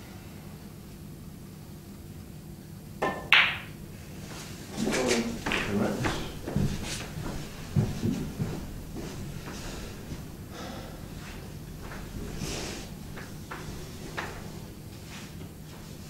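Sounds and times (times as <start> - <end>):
cue striking snooker ball: 3.0 - 3.8, 5.0 - 6.3.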